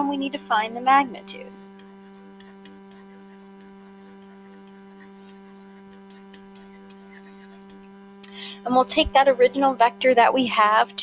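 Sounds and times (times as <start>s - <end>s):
low electrical hum: 0.0s - 11.0s
faint ticks: 1.5s - 8.4s.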